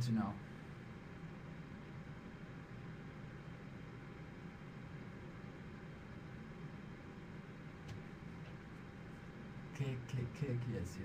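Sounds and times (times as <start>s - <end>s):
microphone hiss and hum: 0.0s - 11.0s.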